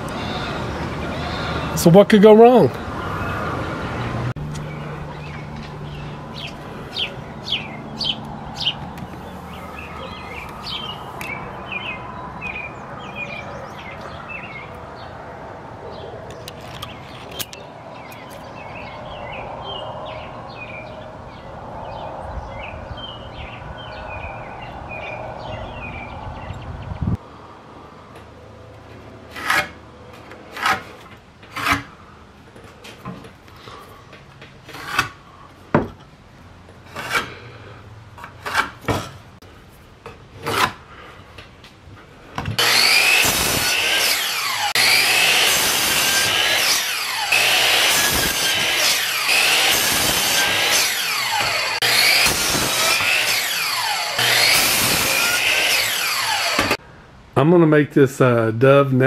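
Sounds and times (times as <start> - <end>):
birds chirping: 0.0 - 27.2.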